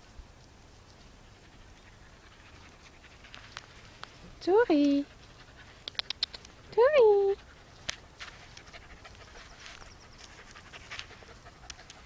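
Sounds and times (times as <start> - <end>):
puppy panting: 1.3 - 4.0, 4.7 - 12.0.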